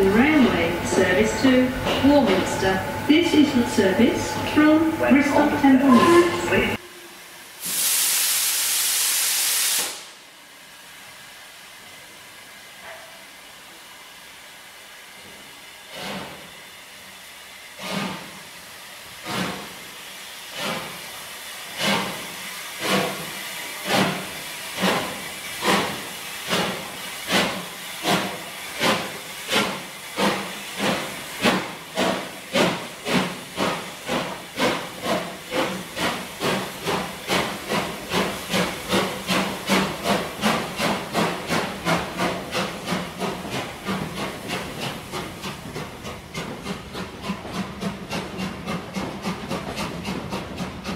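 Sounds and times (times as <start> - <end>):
train wheels clacking over rail joints: 15.9 - 16.5, 17.8 - 18.5, 19.1 - 19.9, 20.5 - 50.9.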